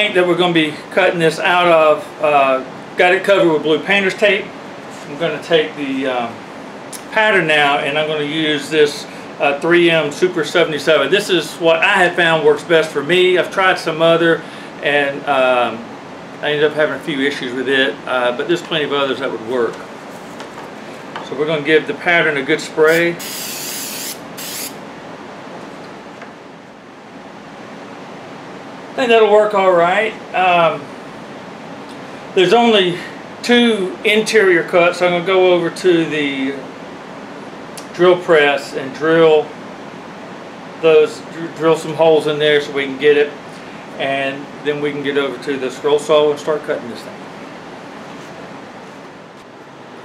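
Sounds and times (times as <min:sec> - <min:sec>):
low background hiss: 0:00.0 - 0:20.0, 0:21.2 - 0:47.9
electric fan running: 0:00.0 - 0:50.0
aerosol spray hissing: 0:22.9 - 0:24.8.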